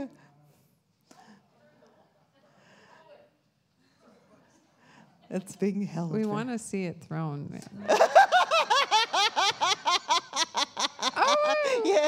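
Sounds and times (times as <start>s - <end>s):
woman laughing: 7.8s - 12.0s.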